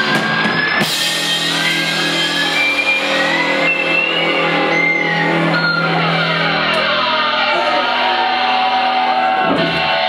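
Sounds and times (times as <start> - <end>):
electric guitar and bass drone: 0.0 - 10.0
whining sliding guitar tones: 0.1 - 10.0.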